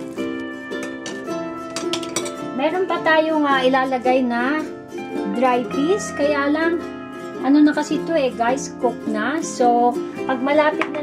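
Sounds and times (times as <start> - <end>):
plucked strings music: 0.0 - 11.0.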